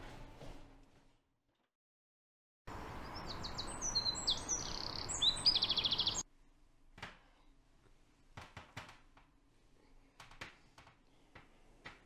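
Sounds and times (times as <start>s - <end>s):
songbirds singing: 2.7s - 6.2s
steady outdoor hiss: 2.7s - 6.2s.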